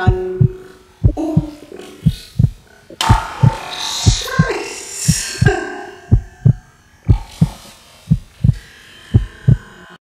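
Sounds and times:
heartbeat low double thuds: 0:00.0 - 0:04.5, 0:05.1 - 0:08.6, 0:09.2 - 0:09.6
electronic music: 0:00.0 - 0:10.0.

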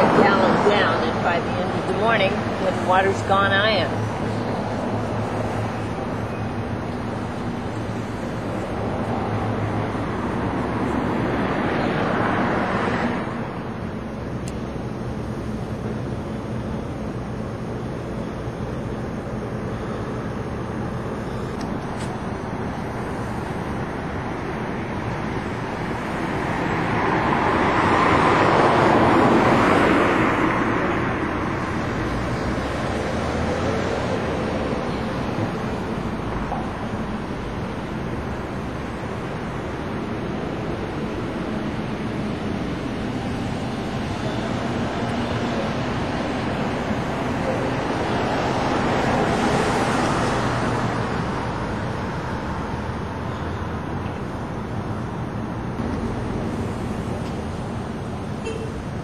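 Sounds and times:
vehicle passing by: 0:00.0 - 0:13.8, 0:22.4 - 0:54.9
road traffic passing: 0:00.0 - 0:59.0.

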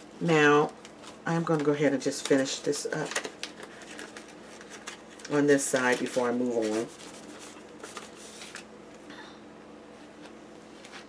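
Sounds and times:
paper sticker sheet rustling: 0:00.9 - 0:08.7.

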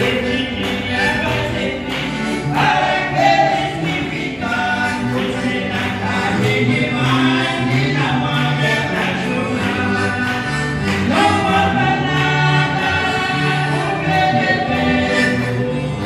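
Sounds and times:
piano accordion: 0:00.0 - 0:16.0
voices singing gospel song: 0:00.0 - 0:16.0.

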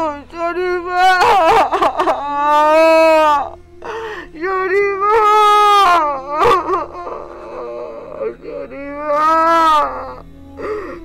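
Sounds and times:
woman wailing and sobbing: 0:00.0 - 0:11.0.

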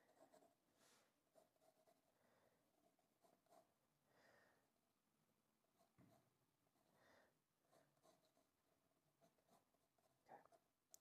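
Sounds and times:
pencil scratching on paper: 0:00.0 - 0:03.8, 0:05.7 - 0:07.0, 0:07.6 - 0:08.6, 0:09.2 - 0:10.7.

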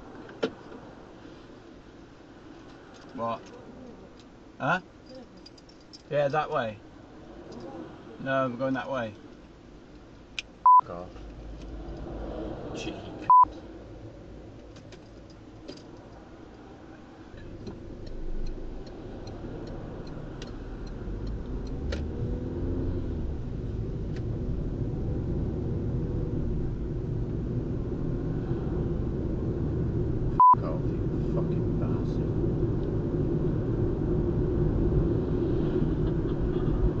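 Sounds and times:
car engine rumble: 0:00.0 - 0:37.0.

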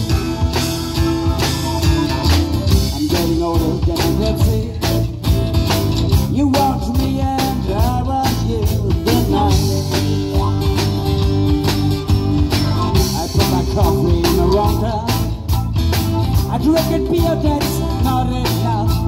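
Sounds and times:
organ: 0:00.0 - 0:06.0
acoustic guitar: 0:00.0 - 0:19.0
drum kit beat: 0:00.0 - 0:19.0
electric bass: 0:00.0 - 0:19.0.

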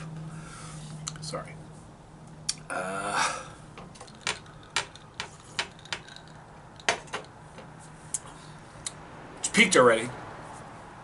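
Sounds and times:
man vocal sound: 0:02.6 - 0:03.5.

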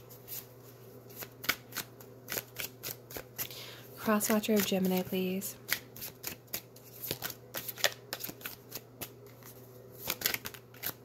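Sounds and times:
cards being shuffled: 0:01.1 - 0:11.0.

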